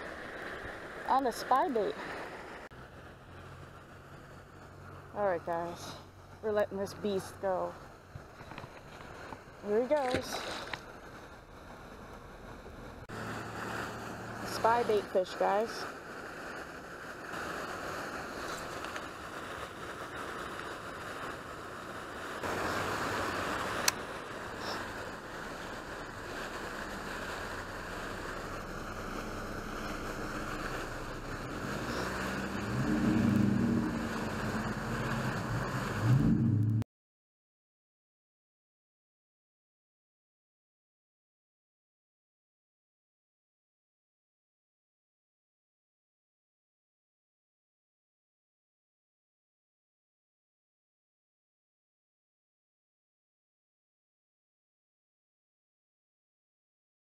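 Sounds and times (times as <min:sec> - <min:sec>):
fountains spraying water: 0:00.0 - 0:36.4
wind: 0:00.0 - 0:36.8
low hum: 0:22.4 - 0:36.8.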